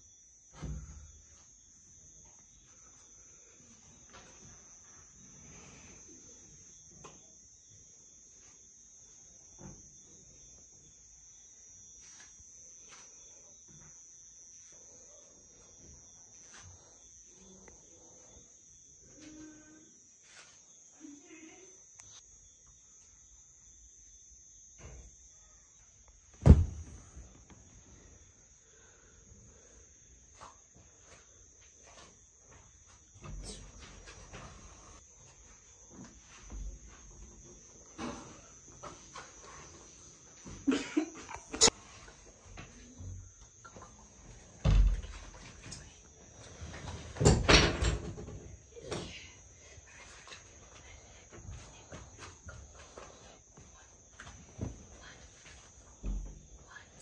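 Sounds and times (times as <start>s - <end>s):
crickets chirping: 0.0s - 57.0s.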